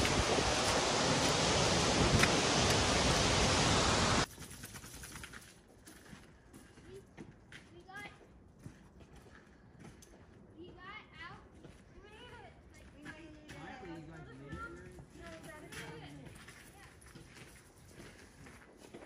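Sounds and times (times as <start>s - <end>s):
waterfall rushing: 0.0s - 4.3s
forest background: 0.0s - 19.0s.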